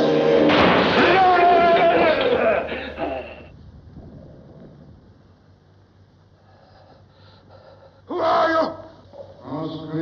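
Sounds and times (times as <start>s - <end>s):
man's startled cry: 8.1s - 8.9s.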